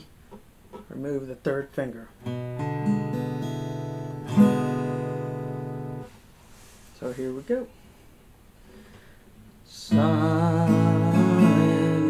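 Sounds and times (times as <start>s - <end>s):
acoustic guitar chord: 2.2s - 6.1s, 9.9s - 12.0s.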